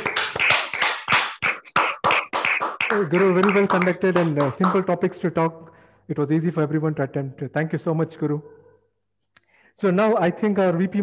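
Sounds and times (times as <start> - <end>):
hand clapping: 0.0 - 5.2.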